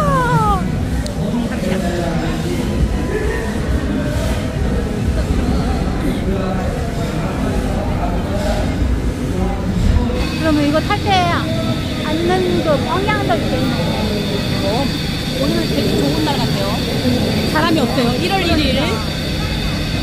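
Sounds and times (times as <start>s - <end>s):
high rising cries: 0.0s - 1.0s
voices calling out: 0.0s - 4.5s
faint high whine: 8.7s - 20.0s.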